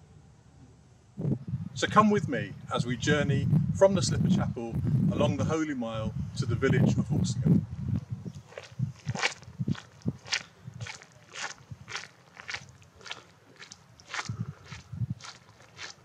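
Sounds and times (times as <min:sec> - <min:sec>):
footsteps crunching on dirt: 0:08.3 - 0:16.0.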